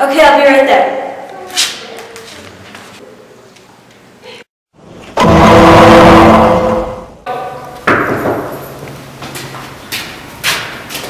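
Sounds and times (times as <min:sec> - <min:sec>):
loud engine-like noise: 0:05.2 - 0:07.1.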